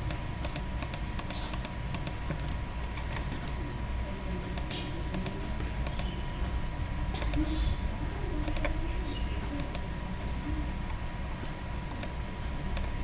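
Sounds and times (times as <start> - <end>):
mouse and keyboard clicks: 0.0 - 3.6, 4.5 - 6.2, 7.1 - 7.4, 8.4 - 8.8, 12.0 - 13.0
steady low hum: 0.0 - 13.0.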